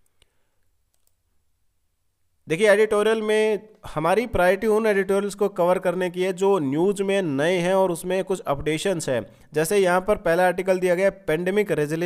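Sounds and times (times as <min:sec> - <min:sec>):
computer mouse clicks: 0:00.9 - 0:01.2.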